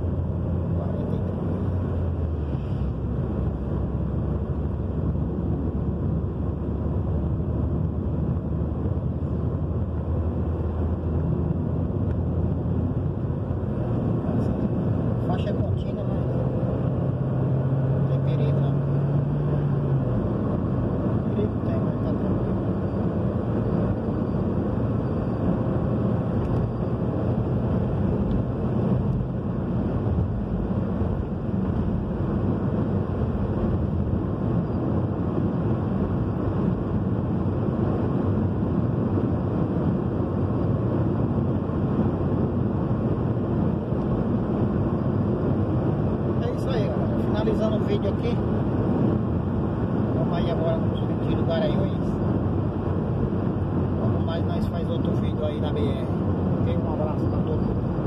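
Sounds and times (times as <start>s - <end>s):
car cabin road and engine noise: 0.0s - 58.0s.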